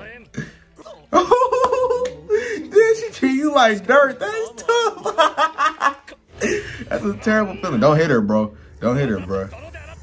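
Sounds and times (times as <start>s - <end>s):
man laughing loudly: 1.1s - 2.4s, 4.7s - 6.6s.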